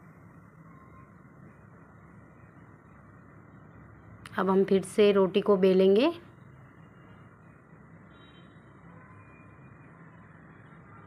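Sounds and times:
low hiss and hum: 0.0 - 11.0.

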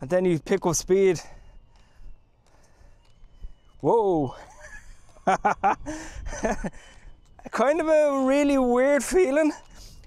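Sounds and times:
man laughing: 4.4 - 6.9.

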